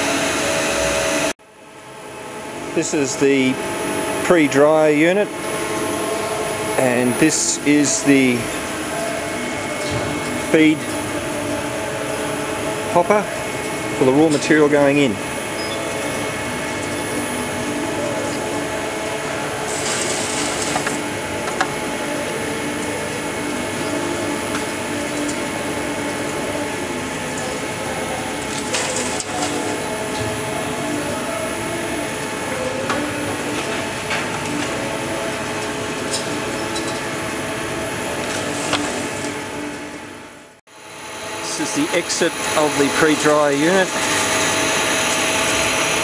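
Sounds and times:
machinery hum and clatter: 0.0s - 46.0s
wood chips pouring: 19.6s - 21.1s, 28.4s - 29.9s, 38.2s - 39.4s.

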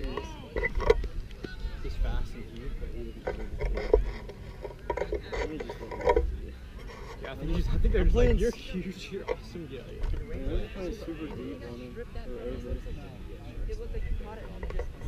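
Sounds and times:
wind rumble on microphone: 7.4s - 8.6s.

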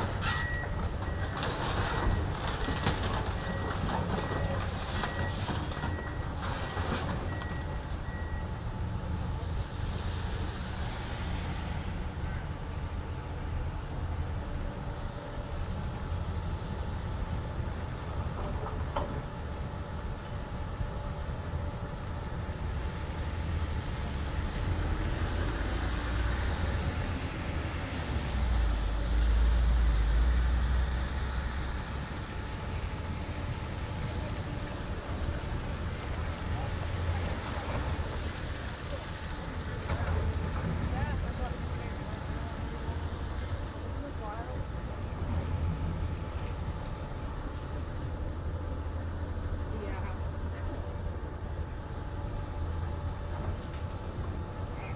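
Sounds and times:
excavator diesel engine rumble: 0.0s - 54.9s.

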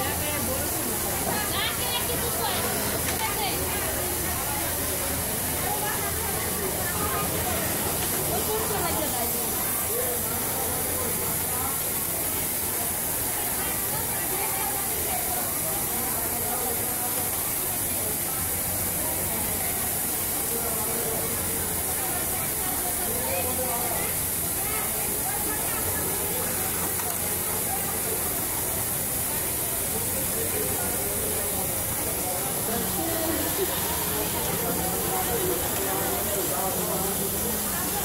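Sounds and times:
indistinct voices chattering: 0.0s - 38.0s
sewing machines hiss and hum: 0.0s - 38.0s.

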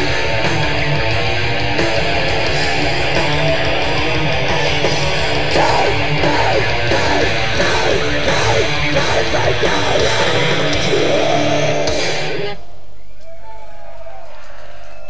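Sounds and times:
metal band playing live: 0.0s - 12.6s
crowd yelling: 0.0s - 15.0s.

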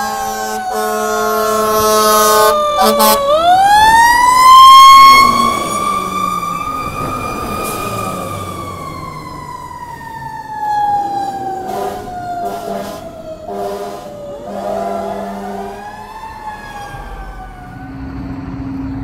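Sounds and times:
short horn blasts: 0.0s - 3.2s, 11.6s - 15.8s
fire engine siren wailing: 0.0s - 19.0s.

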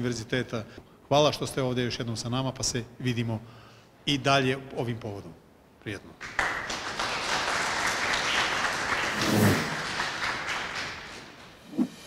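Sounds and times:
audience applauding: 6.2s - 11.6s.

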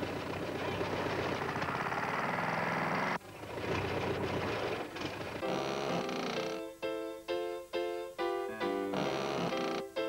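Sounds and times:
cartoon truck motor rattling: 0.0s - 6.6s
musical notes: 5.4s - 10.0s.

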